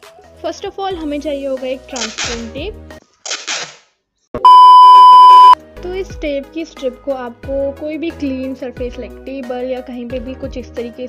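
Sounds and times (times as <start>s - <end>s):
censor bleep tone: 4.4s - 5.6s.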